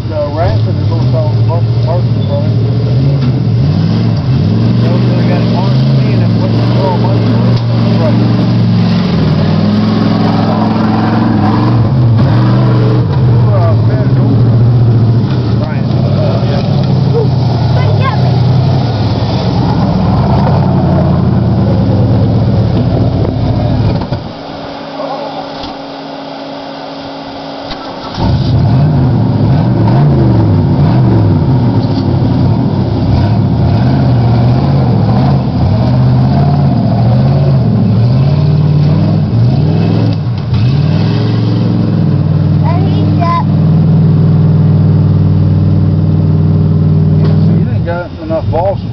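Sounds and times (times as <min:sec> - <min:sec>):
pickup truck engine revving: 0:00.0 - 0:48.9.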